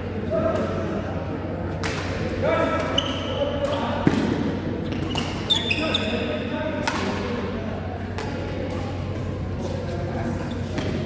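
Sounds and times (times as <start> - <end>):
voices in a hall: 0.0 - 11.0
shoes squeaking on court floor: 2.8 - 4.1, 4.8 - 6.5, 9.6 - 11.0
racket hitting shuttlecock: 6.8 - 7.2.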